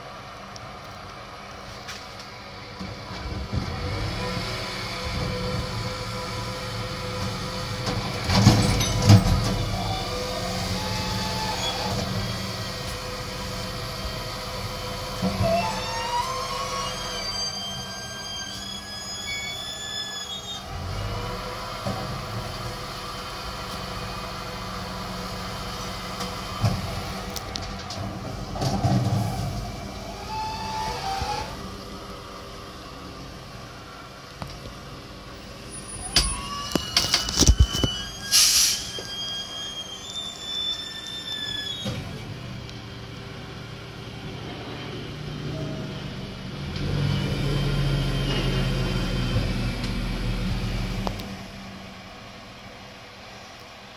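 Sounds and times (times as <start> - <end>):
refuse truck idling: 0.0 - 53.9
bin lift hydraulics: 7.9 - 21.4, 35.7 - 42.4.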